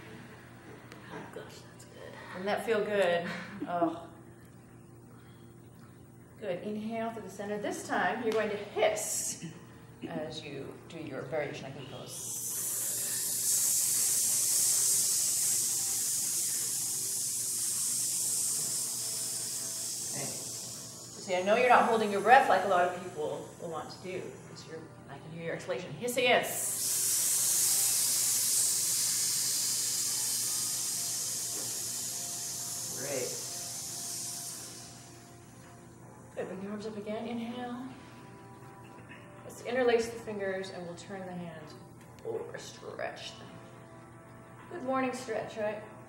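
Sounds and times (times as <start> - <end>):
people hissing through teeth: 12.0 - 23.6, 26.5 - 35.3
group hissing through teeth: 26.6 - 35.1.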